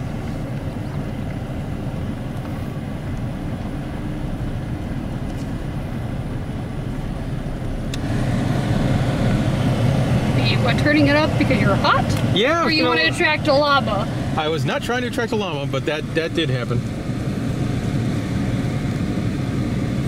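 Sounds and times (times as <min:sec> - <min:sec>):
car engine rumble from inside cabin: 0:00.0 - 0:20.0
person speaking: 0:10.6 - 0:16.6.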